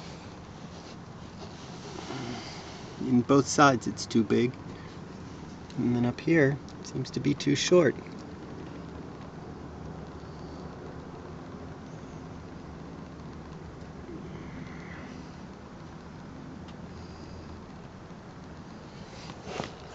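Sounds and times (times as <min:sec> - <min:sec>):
low background hum: 0:00.0 - 0:19.9.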